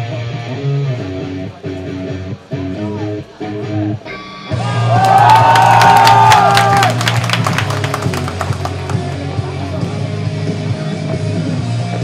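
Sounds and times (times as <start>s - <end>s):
loud rock music: 0.0s - 12.0s
crowd cheering: 4.5s - 9.3s
crowd clapping: 4.8s - 9.5s.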